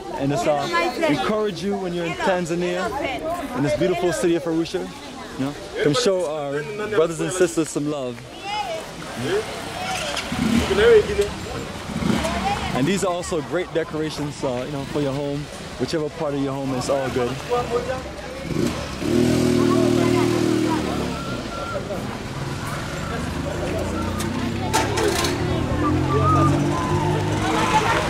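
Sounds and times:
people talking: 0:00.0 - 0:28.0
low vehicle rumble: 0:17.6 - 0:28.0.

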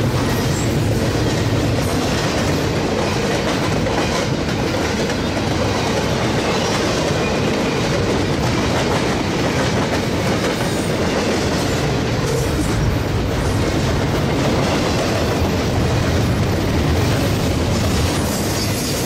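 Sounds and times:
freight train rolling past: 0:00.0 - 0:19.0.

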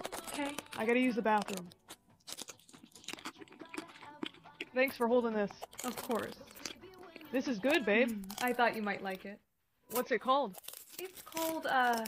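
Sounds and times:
crunching hard candy: 0:00.0 - 0:08.8, 0:09.9 - 0:12.0.

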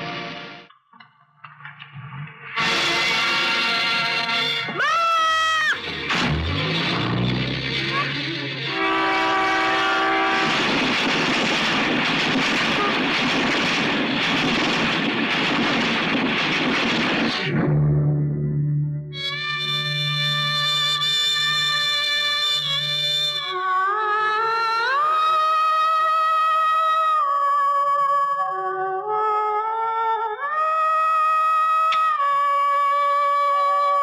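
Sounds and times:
train roaring past: 0:05.7 - 0:17.5
dramatic synthesizer film score: 0:05.7 - 0:25.0
train horn blast: 0:05.9 - 0:10.9.

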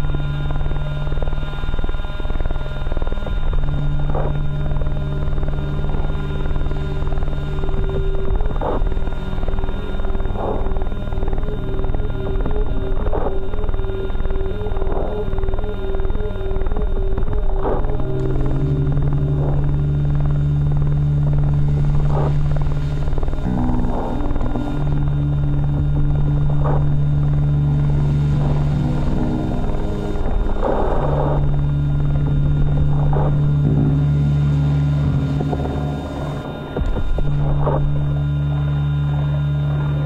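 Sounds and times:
experimental drone music: 0:00.0 - 0:40.0
low held tones: 0:00.0 - 0:40.0.

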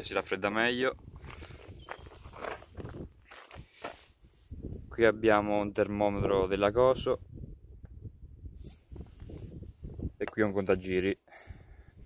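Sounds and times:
footsteps on gravel: 0:01.0 - 0:04.2.

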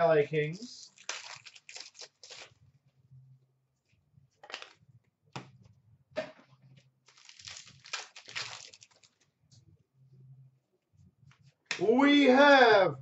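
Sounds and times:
faint low hum: 0:09.0 - 0:12.0.

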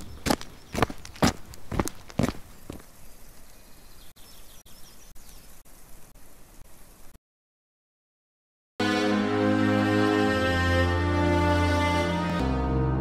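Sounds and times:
footsteps walking: 0:00.0 - 0:03.0
faint background hiss: 0:02.4 - 0:07.2.

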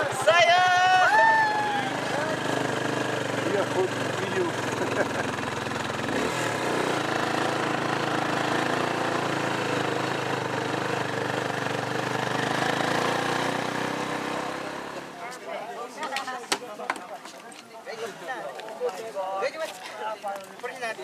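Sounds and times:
vehicle engine running: 0:00.0 - 0:15.2
road noise: 0:00.0 - 0:16.9.

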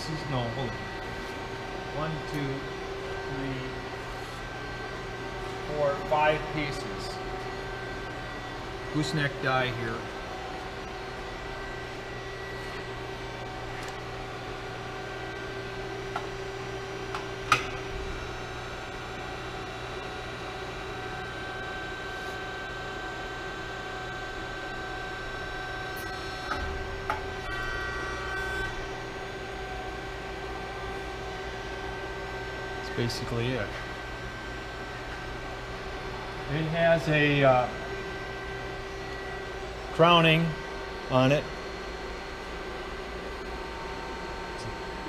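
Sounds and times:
hydraulic pump humming: 0:00.0 - 0:45.0.

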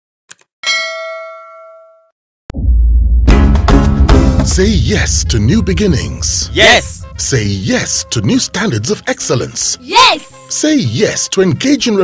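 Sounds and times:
bright bell ding: 0:00.6 - 0:02.1.

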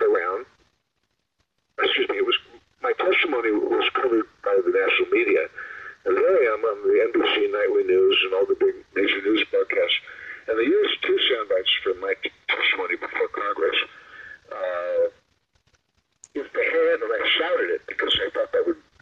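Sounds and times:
person talking over a phone line: 0:00.0 - 0:00.5, 0:01.8 - 0:15.2, 0:16.4 - 0:18.8.

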